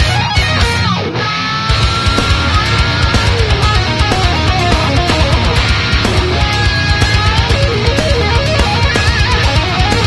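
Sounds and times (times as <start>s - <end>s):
distorted electric guitar lead: 0.0s - 10.0s
drums and bass: 0.0s - 10.0s.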